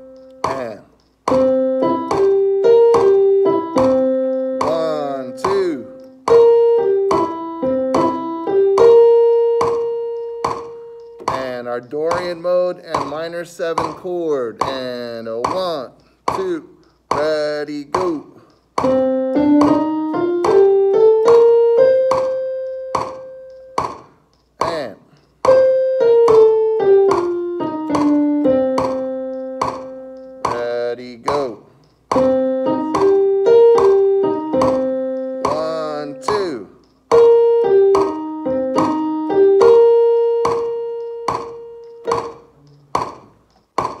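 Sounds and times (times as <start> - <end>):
keyboard chord: 0.0 - 11.4, 18.8 - 23.8, 25.5 - 30.9, 32.2 - 42.5
electronic keyboard playing scale: 0.0 - 12.5, 18.0 - 24.0, 24.7 - 42.8
steady backing beat: 0.0 - 44.0.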